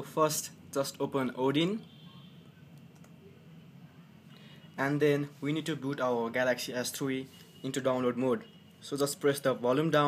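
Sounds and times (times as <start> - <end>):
computer mouse clicks: 2.7 - 3.2.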